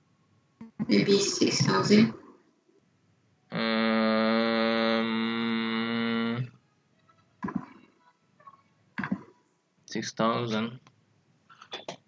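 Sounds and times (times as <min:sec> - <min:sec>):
man holding long uhh: 0:03.5 - 0:06.5.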